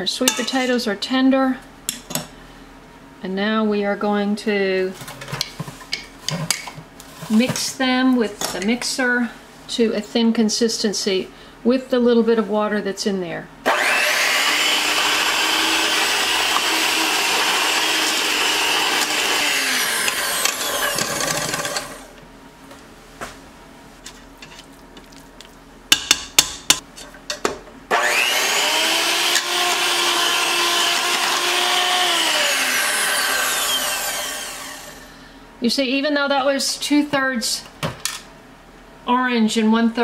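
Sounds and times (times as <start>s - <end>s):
electric hand mixer humming: 13.7s - 22.2s, 27.9s - 35.1s.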